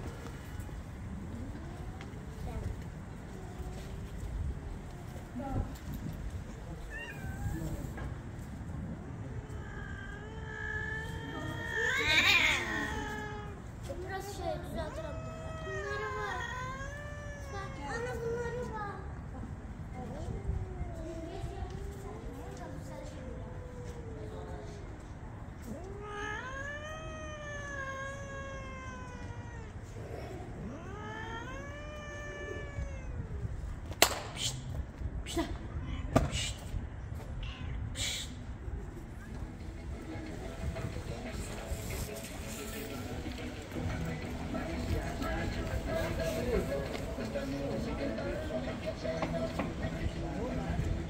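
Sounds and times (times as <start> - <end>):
cat meowing: 6.8 - 8.0, 9.4 - 13.7, 14.3 - 18.6, 25.6 - 33.7, 37.4 - 38.4.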